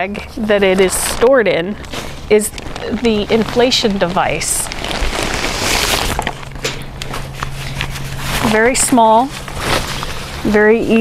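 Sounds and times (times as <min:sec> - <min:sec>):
nylon sack rustling and crinkling: 0:00.0 - 0:11.0
small crackles and scrapes: 0:00.0 - 0:11.0.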